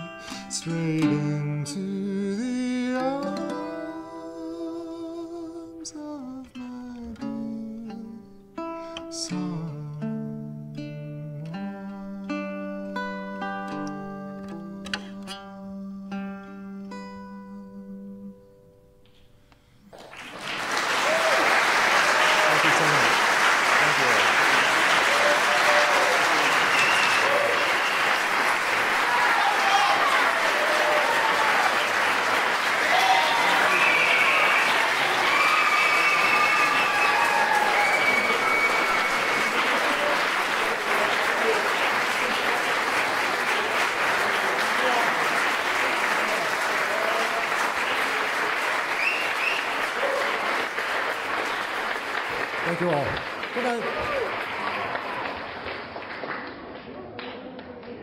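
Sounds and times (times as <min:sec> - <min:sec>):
audience applauding: 0:19.9 - 0:58.0
cheers and whoops: 0:20.8 - 0:23.1, 0:23.8 - 0:42.5, 0:48.8 - 0:50.7, 0:53.7 - 0:55.4.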